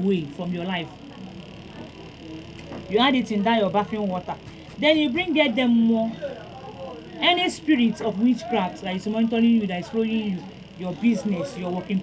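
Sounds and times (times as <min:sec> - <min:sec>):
woman speaking: 0:00.0 - 0:06.2, 0:07.2 - 0:12.0
faint murmur of voice: 0:00.8 - 0:04.8.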